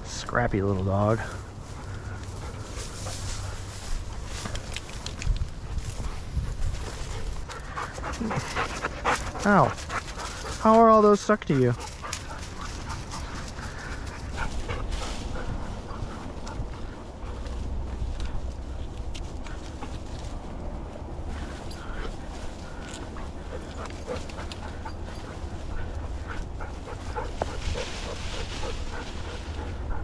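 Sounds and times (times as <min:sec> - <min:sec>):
dry brush rustling and crunching: 0:00.6 - 0:30.0
wind rumble on microphone: 0:01.3 - 0:10.6, 0:11.9 - 0:30.0
dog whining and panting: 0:21.7 - 0:30.0.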